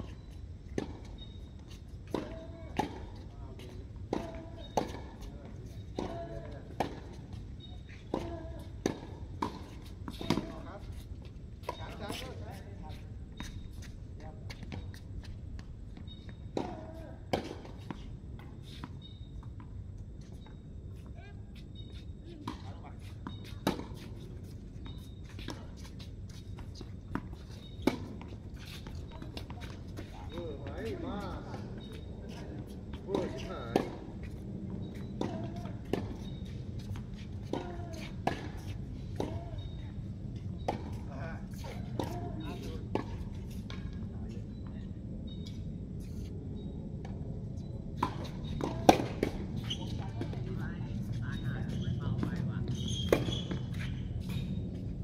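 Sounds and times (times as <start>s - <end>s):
tennis ball bouncing: 0.2s - 1.3s, 2.1s - 3.0s, 3.6s - 5.3s, 5.9s - 11.0s, 22.4s - 25.9s, 26.6s - 39.8s, 40.6s - 44.0s, 48.0s - 51.5s, 53.0s - 54.4s
rackets striking tennis ball: 32.9s - 39.8s, 40.5s - 43.9s, 48.0s - 50.6s.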